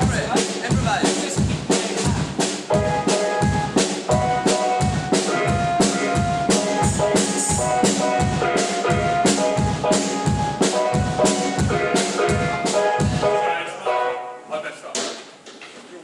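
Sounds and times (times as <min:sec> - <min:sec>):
drum kit beat: 0:00.0 - 0:13.6
held keyboard chords: 0:00.0 - 0:14.5.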